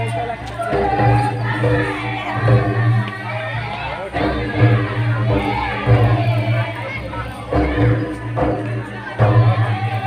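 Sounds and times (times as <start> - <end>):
crowd noise: 0.0 - 10.0
folk singing: 0.0 - 10.0
low drum beat: 0.0 - 10.0.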